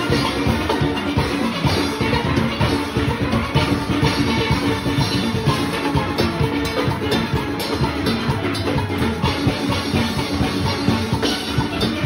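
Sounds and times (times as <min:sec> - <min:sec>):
drums and percussion: 0:00.0 - 0:12.0
steel pans playing rapid runs: 0:00.0 - 0:12.0.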